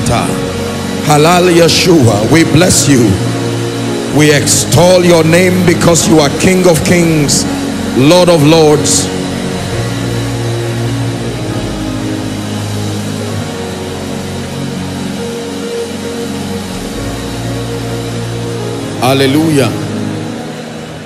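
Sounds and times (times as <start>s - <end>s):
soft held instrumental chords: 0.0s - 21.0s.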